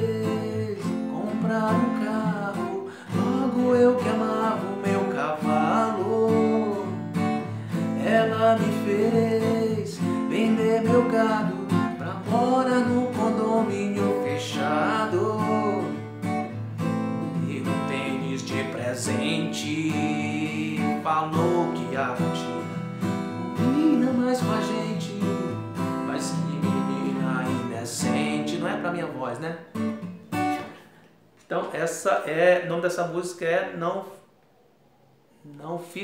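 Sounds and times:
man singing pop song: 0:00.0 - 0:16.1, 0:17.2 - 0:22.8, 0:23.5 - 0:29.6
acoustic guitar strumming chords: 0:00.0 - 0:31.1.

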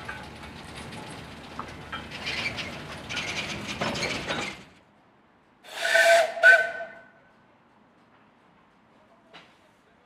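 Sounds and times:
steam locomotive whistle blasts: 0:05.7 - 0:07.0.

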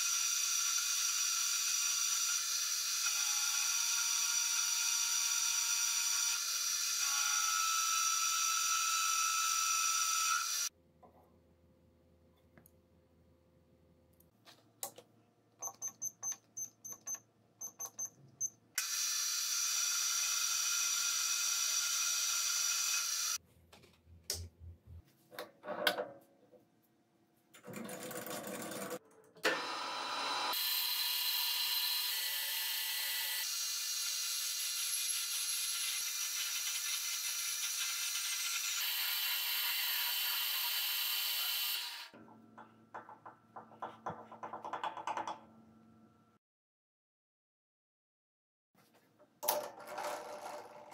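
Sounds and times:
short keypad beeps: 0:15.6 - 0:18.6.

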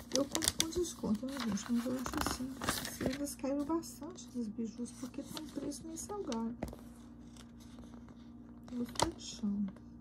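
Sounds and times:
glossy paper page rustling: 0:00.0 - 0:09.3.

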